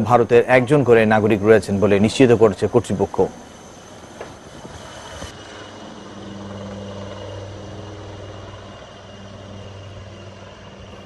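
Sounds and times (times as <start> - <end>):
helicopter rotor and engine drone: 0.0 - 11.0
high hiss: 0.0 - 11.0.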